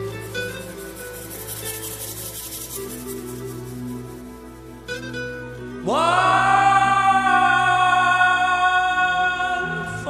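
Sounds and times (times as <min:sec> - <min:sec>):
hissing high-pitched percussion: 0:00.0 - 0:05.4.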